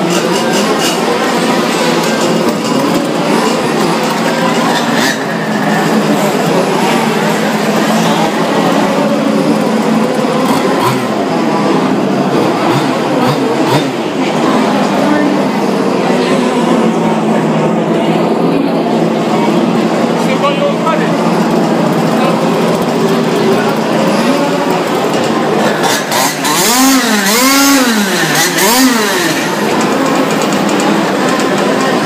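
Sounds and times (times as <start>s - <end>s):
small two-stroke engines droning: 0.0s - 32.0s
voices: 0.0s - 32.0s.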